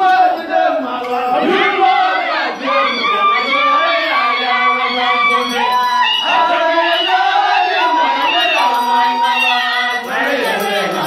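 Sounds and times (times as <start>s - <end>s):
group chanting and singing: 0.0s - 11.0s
shouted calls: 1.4s - 11.0s.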